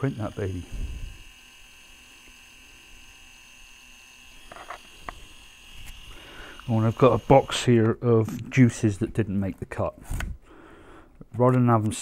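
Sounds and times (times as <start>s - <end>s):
label maker motor whine: 0.0s - 8.0s.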